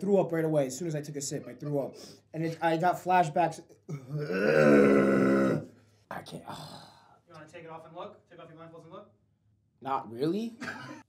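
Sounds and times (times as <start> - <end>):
man groaning: 3.9 - 5.7.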